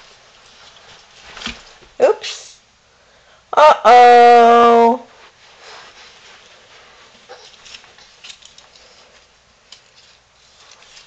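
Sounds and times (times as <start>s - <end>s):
clicks and rustles of movement: 0.0s - 2.0s, 6.1s - 11.0s.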